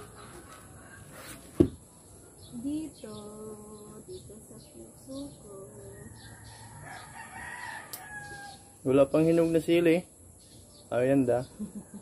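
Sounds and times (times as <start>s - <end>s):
woman speaking: 2.5s - 6.2s.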